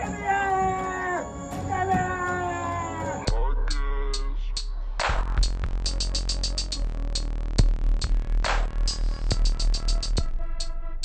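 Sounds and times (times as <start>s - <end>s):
long drawn-out wail: 0.0s - 3.4s
electronic music with deep bass: 0.0s - 11.0s.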